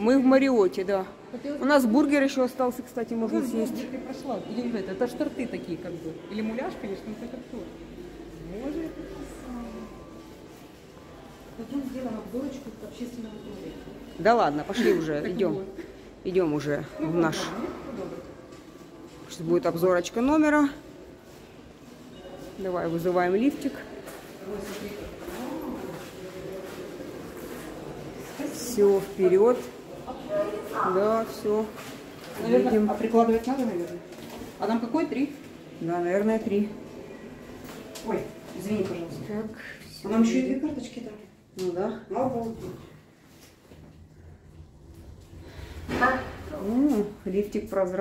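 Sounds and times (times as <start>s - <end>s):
people talking in background: 0.0s - 48.0s.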